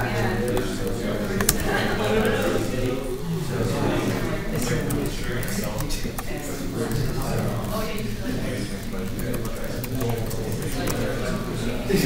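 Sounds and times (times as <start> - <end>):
many people talking: 0.0 - 12.0
keyboard typing clicks: 0.4 - 2.9, 8.8 - 11.3.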